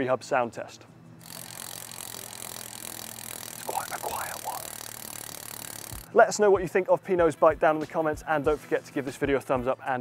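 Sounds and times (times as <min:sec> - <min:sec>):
bicycle freehub ratchet buzzing: 0:01.2 - 0:06.2.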